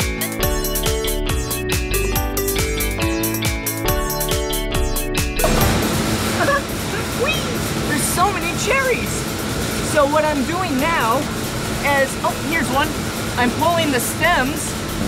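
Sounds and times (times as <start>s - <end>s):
low hum: 4.7s - 10.2s
conveyor machinery running: 5.4s - 15.0s.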